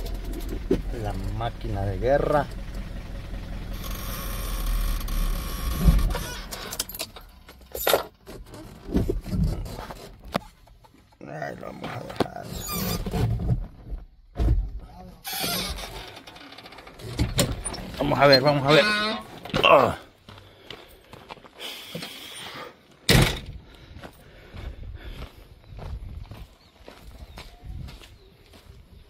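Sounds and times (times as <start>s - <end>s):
truck engine idling: 0.0s - 7.7s
vehicle door opening: 3.8s - 9.7s, 15.3s - 19.7s.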